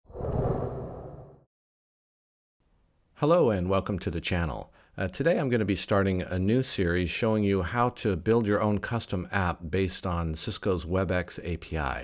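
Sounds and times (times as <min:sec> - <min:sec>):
whoosh sound effect: 0:00.1 - 0:01.4.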